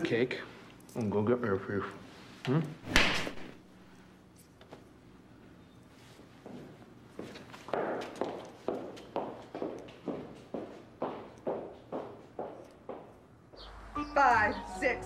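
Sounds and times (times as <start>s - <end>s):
footsteps on a hard surface: 6.4s - 13.7s.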